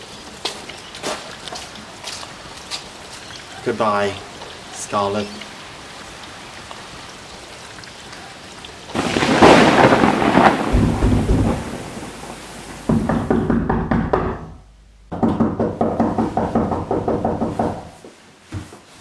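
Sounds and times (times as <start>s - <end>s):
steady rain: 0.0s - 13.4s
thunderclap with deep rumble: 9.0s - 13.3s.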